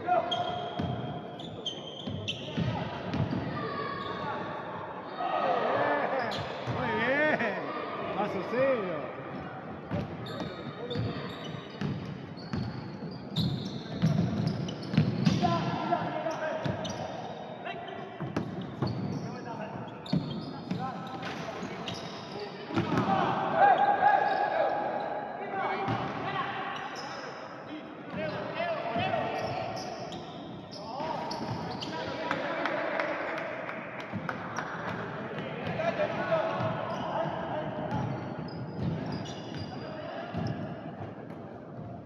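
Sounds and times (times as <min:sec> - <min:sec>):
players' voices and shouts: 0:00.0 - 0:41.9.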